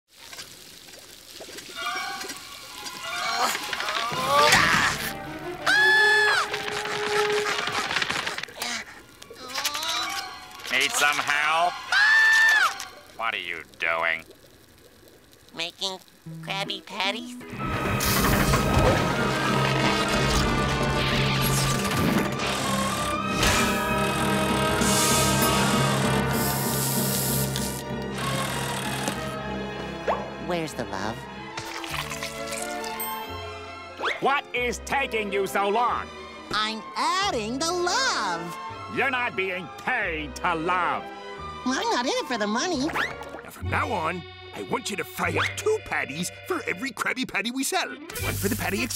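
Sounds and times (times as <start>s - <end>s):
music: 4.2s - 7.9s, 9.9s - 12.0s, 16.4s - 48.9s
patties sizzling on a griddle: 9.4s - 13.6s, 26.3s - 27.8s, 48.1s - 48.9s
mechanical hiss bursts: 22.5s - 29.4s, 48.1s - 48.9s.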